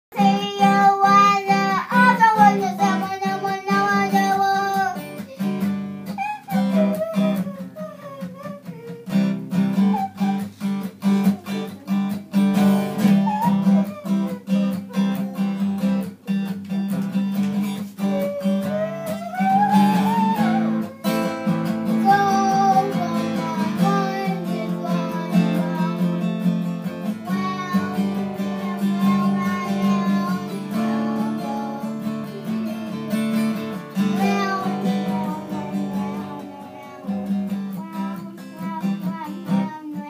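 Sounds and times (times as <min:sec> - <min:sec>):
child singing: 0:00.1 - 0:16.5, 0:18.0 - 0:40.0
acoustic guitar strumming: 0:00.1 - 0:40.0.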